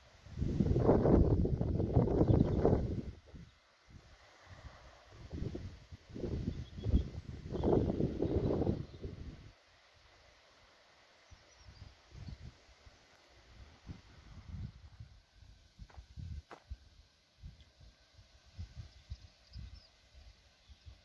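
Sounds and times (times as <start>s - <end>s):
wind buffeting microphone: 0.3s - 3.5s, 5.2s - 9.5s, 13.8s - 15.1s, 15.8s - 17.6s.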